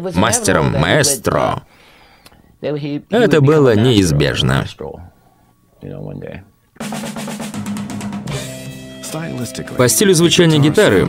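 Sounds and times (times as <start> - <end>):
man's voice: 0.0 - 1.7, 9.0 - 11.0
snare drum roll: 6.8 - 8.3.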